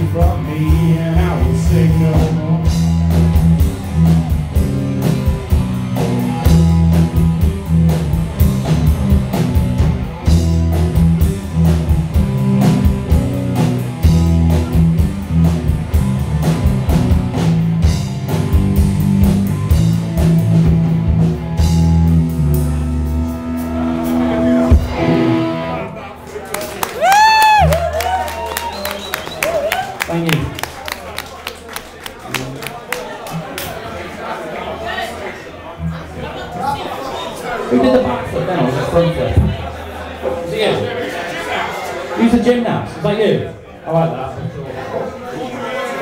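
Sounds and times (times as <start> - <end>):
drum kit beat: 0.0 - 25.5
heavy bass notes: 0.0 - 26.0
electric guitars: 0.0 - 29.8.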